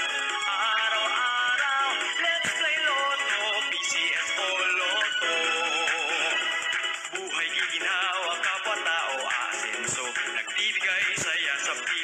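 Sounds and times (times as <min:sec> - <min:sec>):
instrumental backing music: 0:00.0 - 0:12.0
person singing with vibrato: 0:00.0 - 0:12.0.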